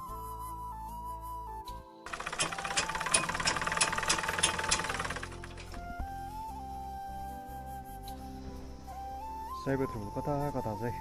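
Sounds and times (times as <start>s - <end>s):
sewing machine rattling: 2.1s - 5.8s.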